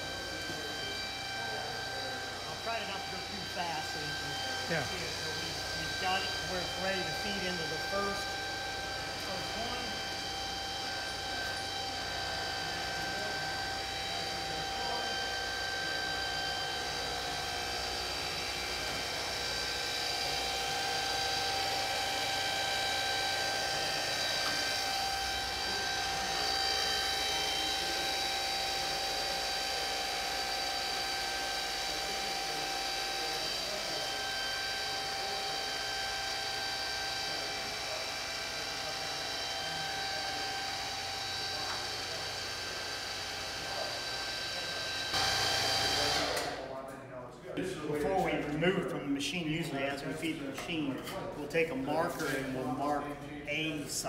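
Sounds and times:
roll-forming machine hum and whine: 0:00.0 - 0:46.7.

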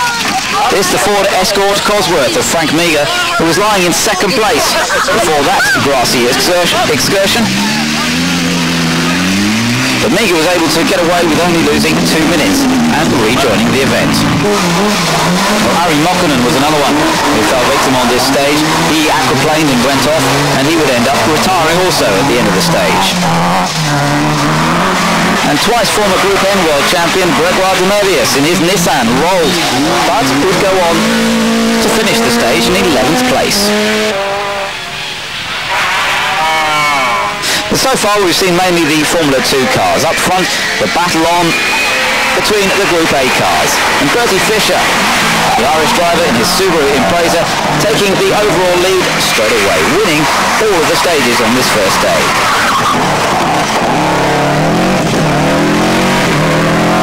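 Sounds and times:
rally car engine revving: 0:00.0 - 0:57.0.

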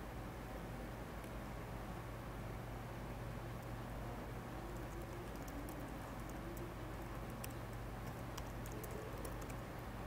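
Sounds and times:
steady low hum: 0:00.0 - 0:10.0
keyboard typing clicks: 0:04.7 - 0:09.6.

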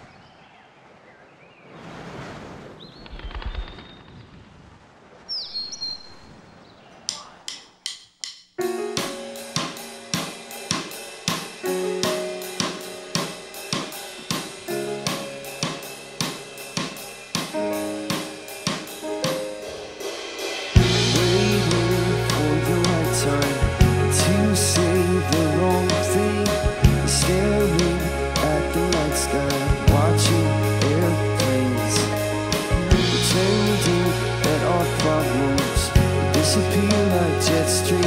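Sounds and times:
drum kit beat with cymbal: 0:07.1 - 0:38.0
full band playing: 0:09.0 - 0:38.0.

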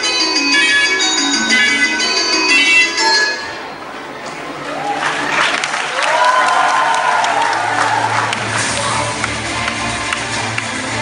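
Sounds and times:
background music: 0:00.0 - 0:03.7, 0:07.6 - 0:11.0
audience applauding and cheering: 0:04.2 - 0:11.0.

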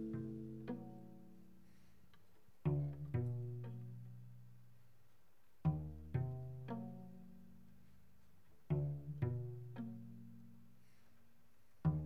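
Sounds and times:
cello plucked notes: 0:00.0 - 0:04.9, 0:05.6 - 0:11.0, 0:11.6 - 0:12.0.

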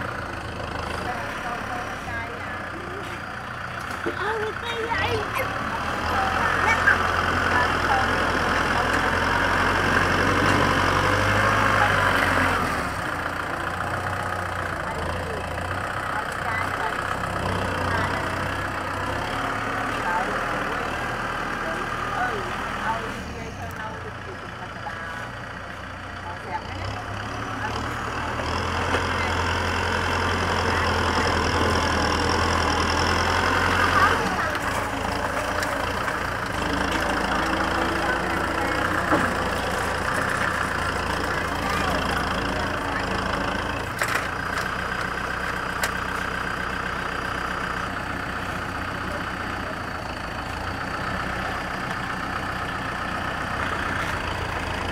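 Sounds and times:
tractor diesel engine running: 0:00.0 - 0:54.9.

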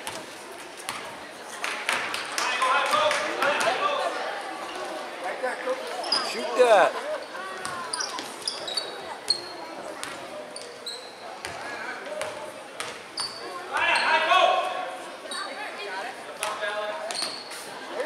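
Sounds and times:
sneaker squeaks: 0:05.9 - 0:06.6, 0:07.2 - 0:14.3, 0:15.3 - 0:15.6, 0:17.0 - 0:17.8.

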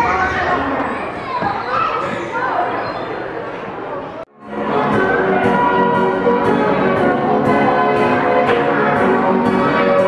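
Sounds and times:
carousel band organ music: 0:04.4 - 0:10.0.

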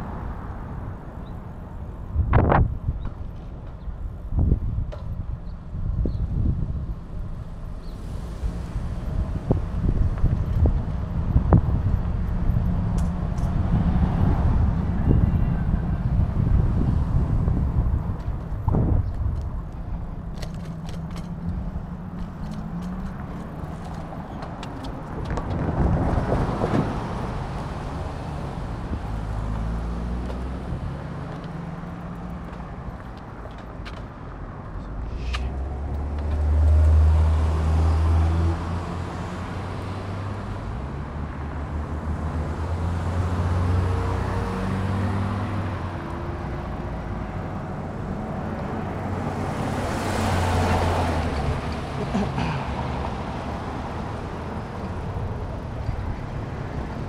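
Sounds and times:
cars and trucks passing: 0:00.0 - 0:57.0.

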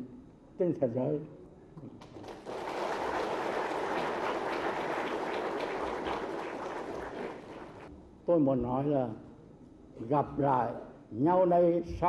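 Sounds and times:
audience applauding: 0:02.0 - 0:07.9.

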